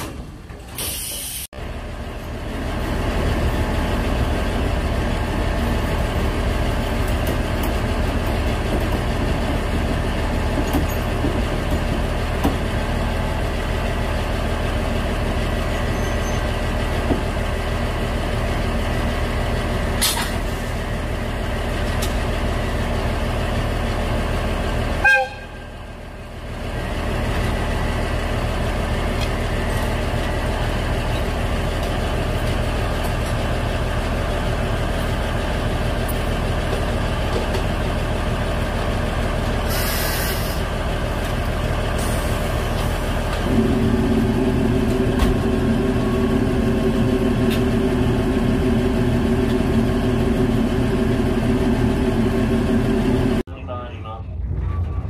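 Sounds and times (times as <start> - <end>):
locomotive mechanical hum: 0.0 - 55.0.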